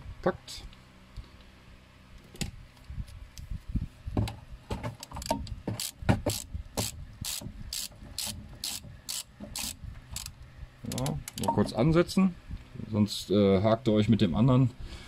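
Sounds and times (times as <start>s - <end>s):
ratchet wrench clicking: 5.2s - 11.5s.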